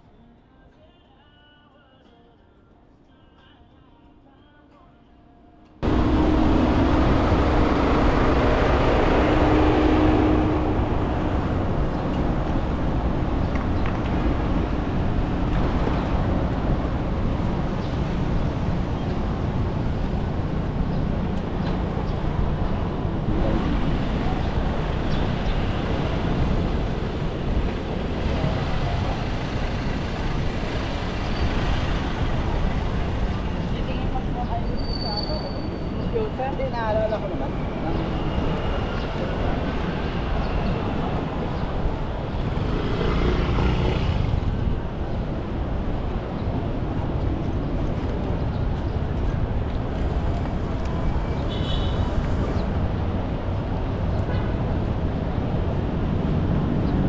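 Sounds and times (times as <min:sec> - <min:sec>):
cars and motorcycles passing: 0:05.8 - 0:34.7, 0:35.8 - 0:57.0.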